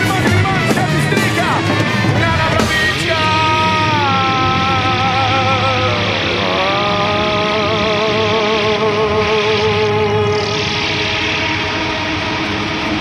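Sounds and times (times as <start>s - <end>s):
live rock band music: 0.0s - 13.0s.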